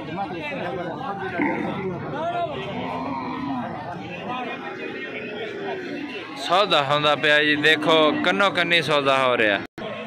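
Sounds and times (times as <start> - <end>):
men's voices chattering: 0.0 - 10.0.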